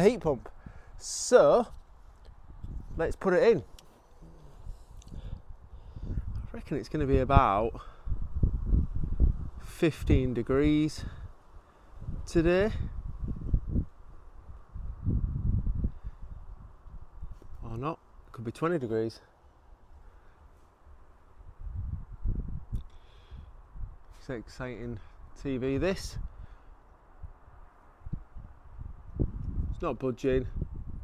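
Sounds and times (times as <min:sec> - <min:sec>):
wind buffeting microphone: 0:00.0 - 0:17.8, 0:21.0 - 0:31.0.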